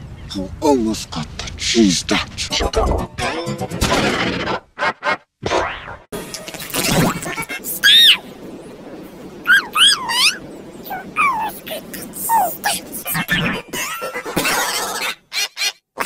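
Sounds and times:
pitch-shifted distorted voices: 2.1 - 3.3, 6.8 - 8.3, 9.4 - 15.2.

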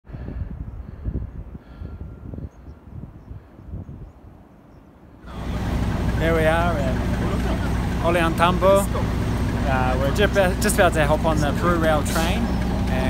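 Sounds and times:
wind buffeting microphone: 0.0 - 13.0
train engine humming: 5.2 - 13.0.

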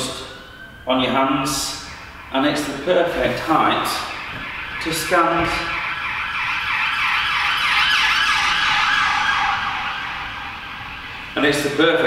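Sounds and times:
emergency vehicle siren: 0.0 - 12.0.

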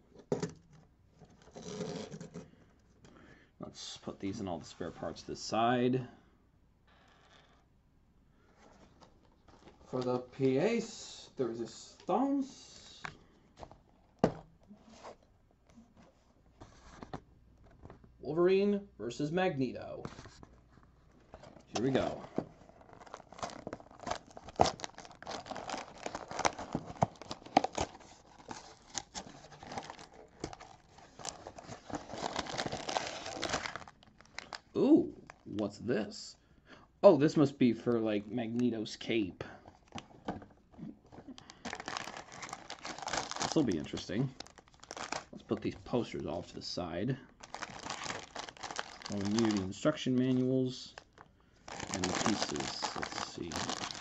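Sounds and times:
plastic bags crinkling: 21.7 - 35.5, 41.2 - 45.5, 47.4 - 54.0.

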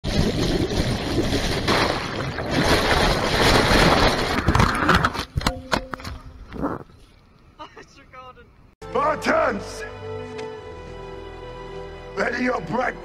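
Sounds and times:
underwater rushing river water: 0.0 - 5.0.

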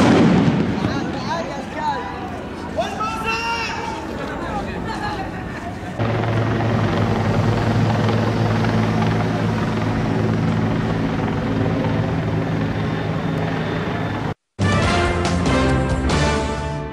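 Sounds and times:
helicopter droning overhead: 0.8 - 14.4.

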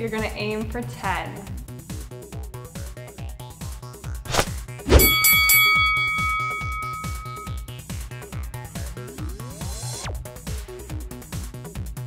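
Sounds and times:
bell-like chime: 4.9 - 7.6.

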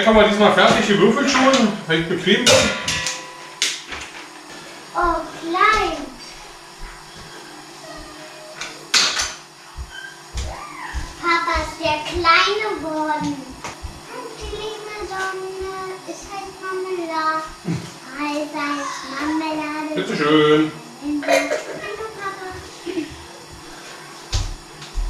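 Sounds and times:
child speaking and singing: 5.0 - 7.0, 7.8 - 8.5, 10.4 - 20.1, 21.0 - 22.9.

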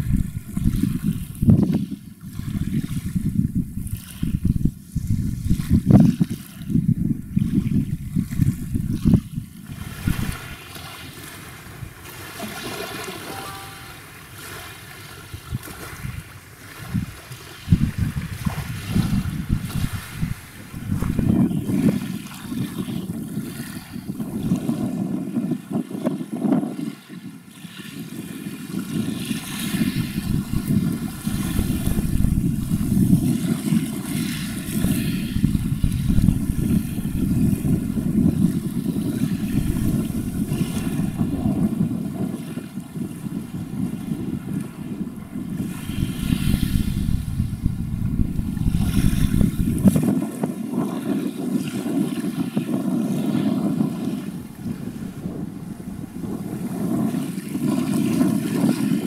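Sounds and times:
wind buffeting microphone: 0.0 - 59.0
large ship rumble: 43.8 - 50.0.

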